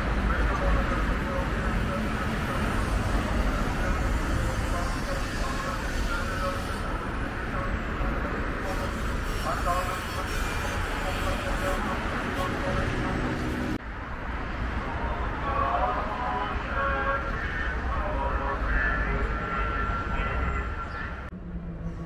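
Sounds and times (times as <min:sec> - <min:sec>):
chatter of passersby: 0:00.0 - 0:13.8
road traffic rumble: 0:00.0 - 0:22.0.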